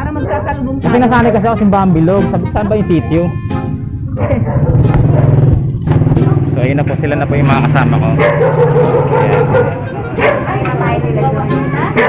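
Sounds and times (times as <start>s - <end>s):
small engine running: 4.1s - 10.0s.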